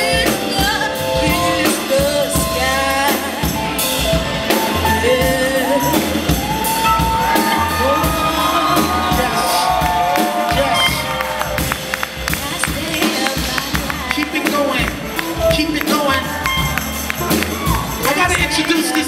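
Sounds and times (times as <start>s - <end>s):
live band jazz groove: 0.0s - 19.0s.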